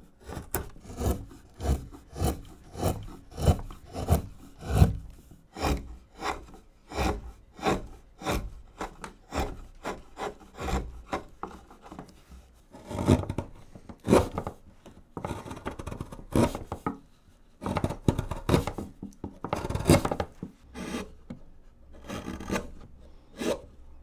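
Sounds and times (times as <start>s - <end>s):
carving gouge scraping wood: 0.0s - 14.6s, 15.2s - 17.0s, 17.6s - 23.8s.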